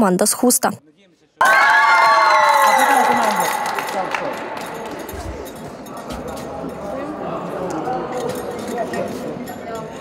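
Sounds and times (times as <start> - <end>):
chatter of many people: 2.9 - 10.0
light clinks: 4.6 - 10.0.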